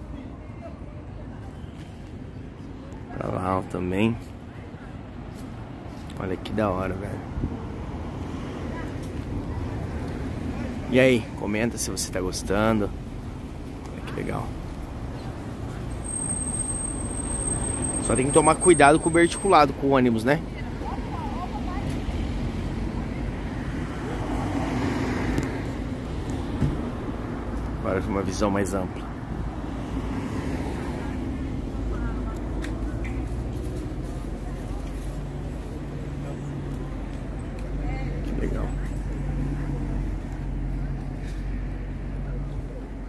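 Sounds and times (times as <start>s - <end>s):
road traffic rumbling: 0.0s - 43.0s
street noise: 0.0s - 43.0s
vehicle passing: 6.8s - 43.0s.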